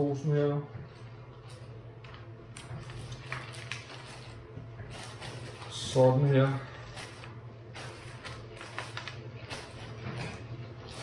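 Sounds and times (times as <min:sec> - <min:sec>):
steady low hum: 0:00.0 - 0:11.0
plastic bag crinkling: 0:01.5 - 0:11.0.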